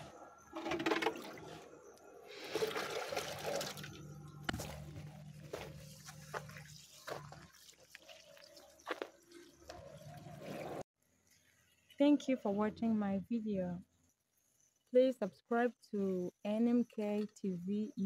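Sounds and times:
water sloshing and gurgling: 0:00.4 - 0:04.9
water poured onto soil: 0:02.4 - 0:04.0.

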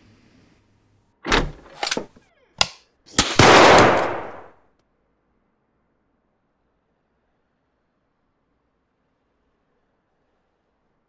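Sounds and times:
pistol gunfire: 0:03.1 - 0:04.5.

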